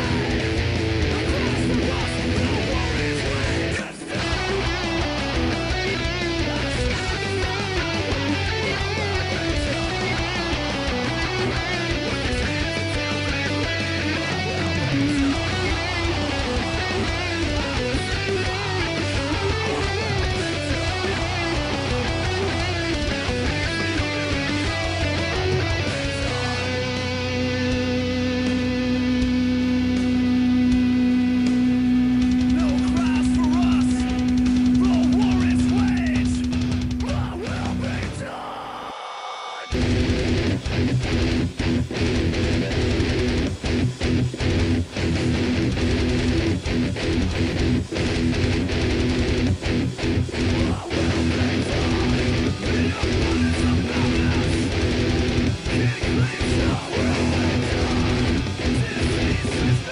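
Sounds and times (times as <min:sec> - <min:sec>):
constant low end: 0:00.0 - 0:38.3, 0:39.7 - 0:59.9
electric guitar playing metal: 0:00.0 - 0:59.9.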